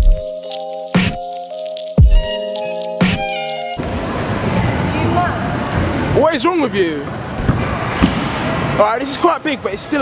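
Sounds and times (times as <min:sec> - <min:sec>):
echoing indoor hubbub: 0:03.2 - 0:10.0.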